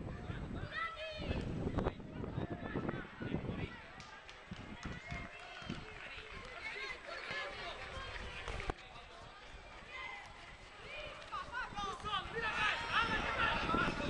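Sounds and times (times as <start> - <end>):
crowd shouting and calling: 4.8 - 14.0.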